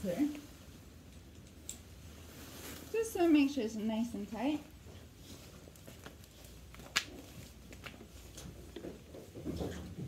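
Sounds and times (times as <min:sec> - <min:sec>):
straps rustling: 0:01.7 - 0:08.9.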